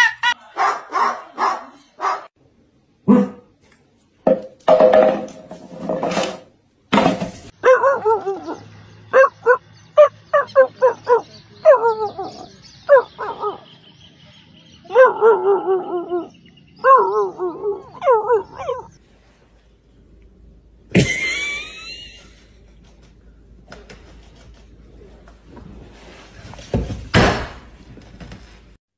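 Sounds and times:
dog yipping: 0:07.6 - 0:13.6, 0:14.9 - 0:19.0
dog howling: 0:14.9 - 0:18.9.

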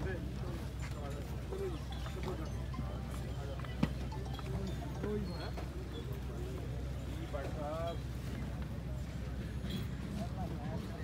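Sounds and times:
chatter of scattered voices: 0:00.0 - 0:11.0.

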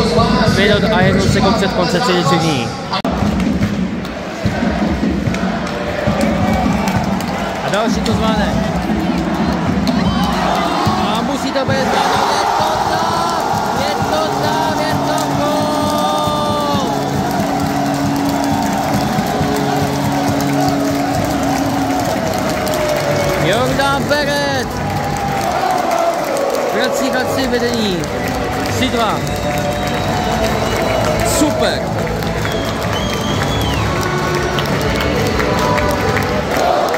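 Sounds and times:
music over loudspeakers: 0:00.0 - 0:36.9
crowd cheering and shouting: 0:04.1 - 0:36.9.

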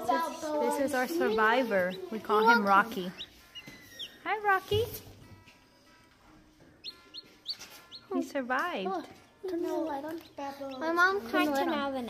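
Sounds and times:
chick peeping: 0:00.1 - 0:05.0, 0:06.8 - 0:08.3.

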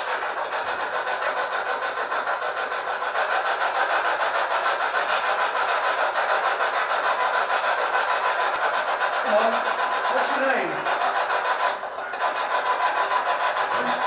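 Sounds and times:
hissing drone with flutter: 0:06.4 - 0:14.0.

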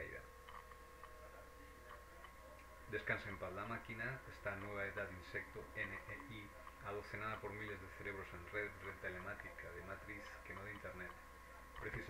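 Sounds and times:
faint steady tone: 0:00.0 - 0:12.0
low hum: 0:00.0 - 0:12.0.

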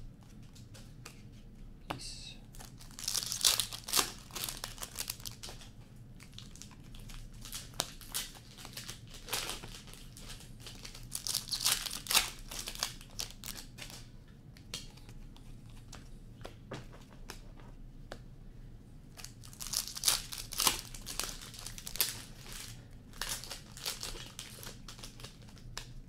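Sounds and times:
card wrappers crinkling and tearing: 0:02.5 - 0:14.1, 0:19.2 - 0:26.0.

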